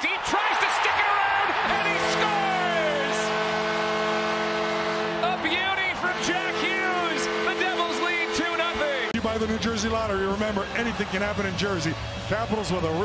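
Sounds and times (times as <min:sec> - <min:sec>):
crowd noise: 0:00.0 - 0:13.0
held multi-note horn chord: 0:01.6 - 0:09.1.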